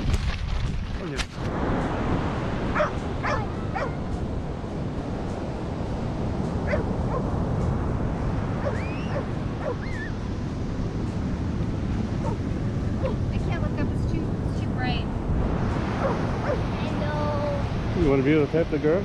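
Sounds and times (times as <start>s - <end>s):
surf rushing: 0.0s - 19.0s
wind: 0.0s - 19.0s.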